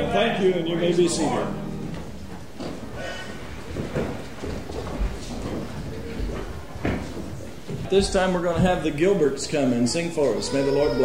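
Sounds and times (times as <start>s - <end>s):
people shuffling and rustling: 0.0s - 11.0s.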